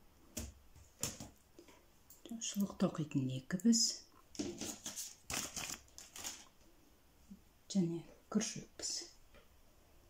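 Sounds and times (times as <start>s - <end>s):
packaging crinkling: 4.4s - 6.6s.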